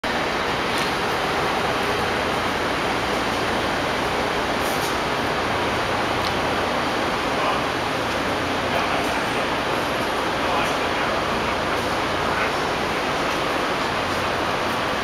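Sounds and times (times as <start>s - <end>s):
city traffic noise: 0.0s - 15.0s.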